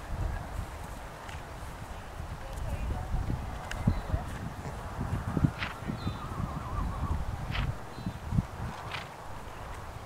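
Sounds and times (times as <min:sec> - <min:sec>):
horse hooves thudding on grass: 0:00.0 - 0:06.4, 0:07.4 - 0:10.0.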